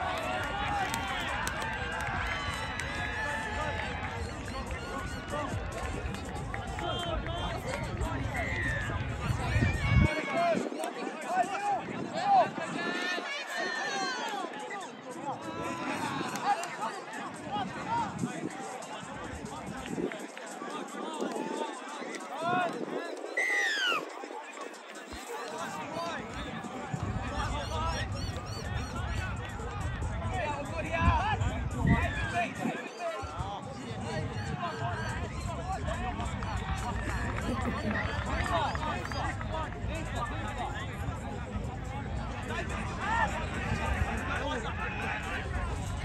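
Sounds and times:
players shouting and calling: 0:00.0 - 0:46.0.

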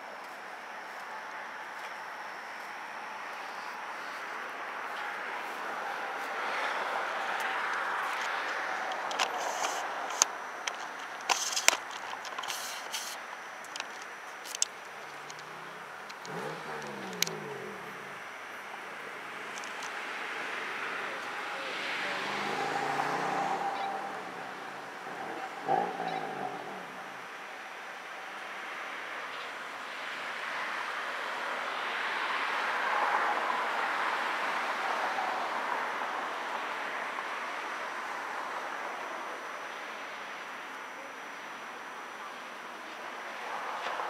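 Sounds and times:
vehicles passing: 0:00.0 - 0:44.0.

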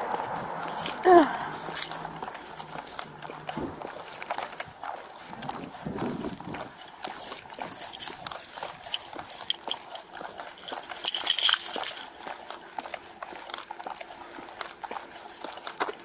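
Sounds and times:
footsteps on concrete: 0:00.0 - 0:16.0
gear jingling and rustling: 0:00.0 - 0:16.0.

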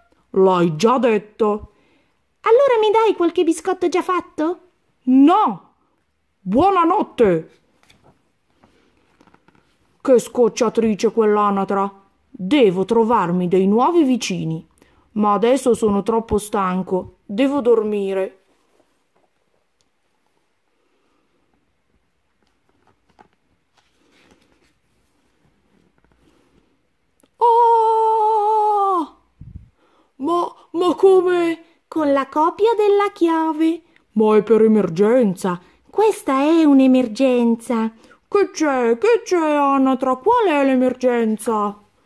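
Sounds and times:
book page turning: 0:07.5 - 0:09.9, 0:21.9 - 0:26.8
person screaming: 0:27.4 - 0:29.2.

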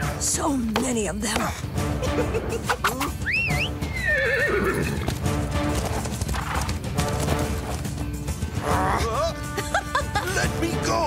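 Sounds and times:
background music: 0:00.0 - 0:11.0
horse neighing: 0:03.0 - 0:06.7
hoofbeats clip-clopping: 0:03.4 - 0:08.8.

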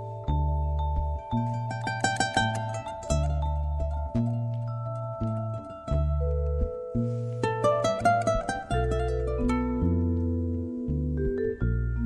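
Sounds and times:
vibraphone: 0:00.0 - 0:07.4, 0:08.7 - 0:12.0
acoustic guitar: 0:00.0 - 0:12.0
short high plucked notes: 0:00.0 - 0:12.0.

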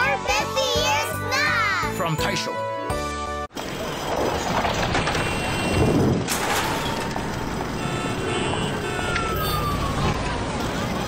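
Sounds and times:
traffic: 0:00.0 - 0:02.5, 0:03.5 - 0:11.0
street bustle: 0:00.0 - 0:11.0
falling siren tone: 0:06.7 - 0:11.0.

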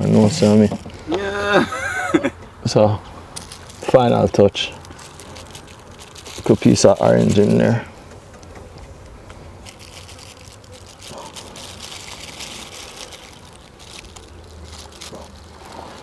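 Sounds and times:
low outdoor rumble: 0:02.0 - 0:16.0
plastic bag rustling: 0:03.4 - 0:07.8, 0:09.4 - 0:16.0.

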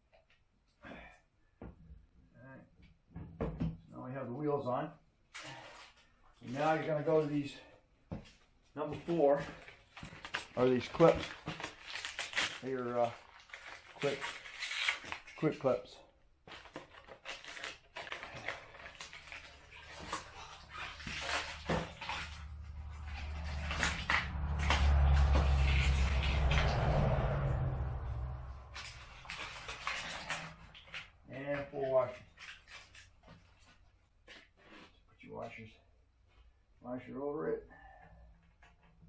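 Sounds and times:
plastic bag rustling: 0:09.0 - 0:15.6, 0:16.4 - 0:27.1, 0:28.6 - 0:31.2
low rumble: 0:22.4 - 0:29.4.

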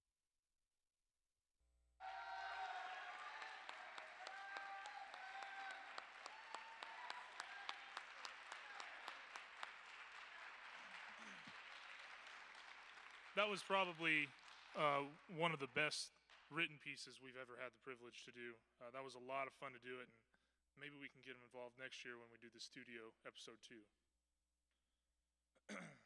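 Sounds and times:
people cheering: 0:02.0 - 0:16.0
audience applauding: 0:02.0 - 0:16.6.

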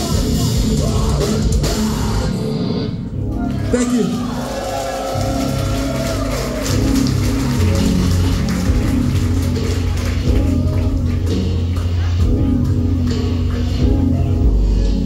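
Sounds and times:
live heavy band droning: 0:00.0 - 0:02.9.

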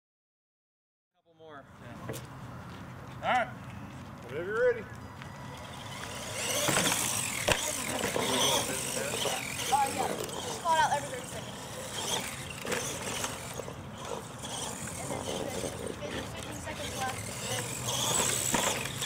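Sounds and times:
toy truck motor whining: 0:05.2 - 0:19.0.

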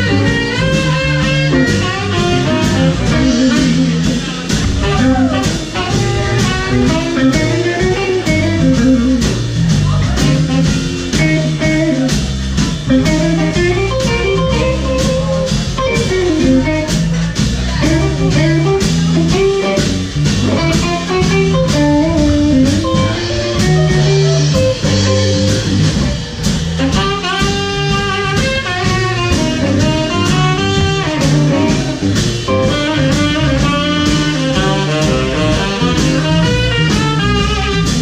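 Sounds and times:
bright lead melody: 0:00.0 - 0:09.6, 0:19.4 - 0:37.9
live blues band playing: 0:00.0 - 0:38.0.

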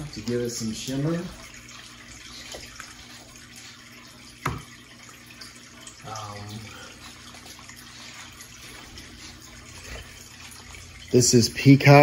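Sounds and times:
water trickling: 0:00.0 - 0:12.0.

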